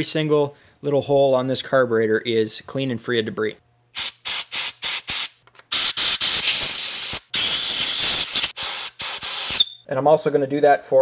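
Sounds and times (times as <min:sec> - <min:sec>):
compressed air hissing from blow gun: 0:04.0 - 0:09.8.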